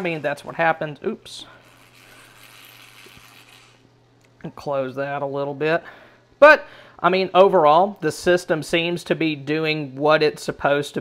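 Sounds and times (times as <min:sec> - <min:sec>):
faint steady hum with hiss: 0:00.0 - 0:11.0.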